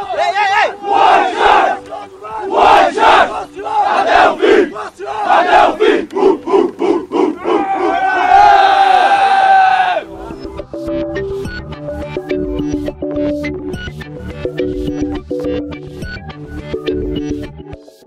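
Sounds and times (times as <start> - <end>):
team shouting a chant: 0.0 - 10.1.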